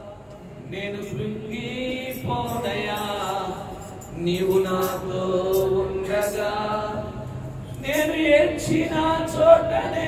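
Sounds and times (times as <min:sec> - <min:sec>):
man singing worship song: 0:00.0 - 0:10.0.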